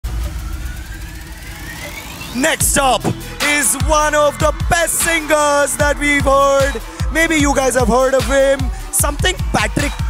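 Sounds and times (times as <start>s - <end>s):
rising sweep: 0.0s - 7.4s
deep rumble: 0.0s - 7.8s.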